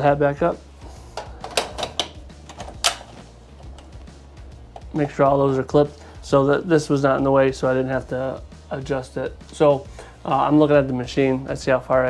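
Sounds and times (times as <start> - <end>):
cap frame clicks: 1.2 - 3.9.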